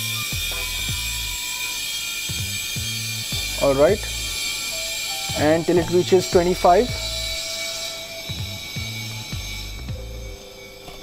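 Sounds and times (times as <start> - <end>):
gas hissing through regulator: 0.0 - 11.0.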